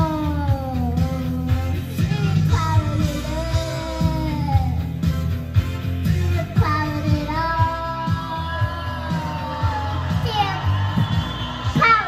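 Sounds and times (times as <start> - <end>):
rock backing track with drums: 0.0 - 12.0.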